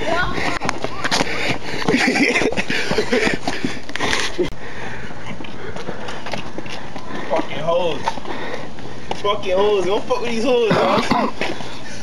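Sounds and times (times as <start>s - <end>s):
footsteps on pavement: 0.0s - 12.0s.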